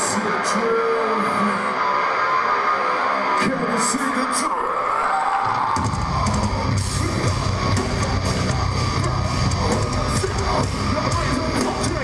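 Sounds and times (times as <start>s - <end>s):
distorted guitars: 0.0s - 12.0s
fast dense drumming: 5.8s - 12.0s
bass guitar: 5.9s - 12.0s.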